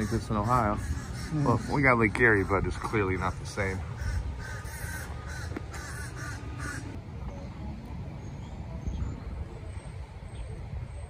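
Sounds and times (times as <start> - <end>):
crow cawing: 0.0 - 7.0
steady low rumble: 0.0 - 11.0.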